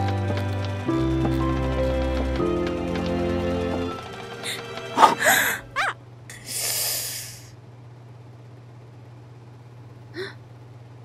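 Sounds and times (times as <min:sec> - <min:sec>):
boy gasping and breathing: 0:04.4 - 0:07.5, 0:10.2 - 0:10.4
boy whimpering: 0:04.5 - 0:07.5, 0:10.2 - 0:10.4.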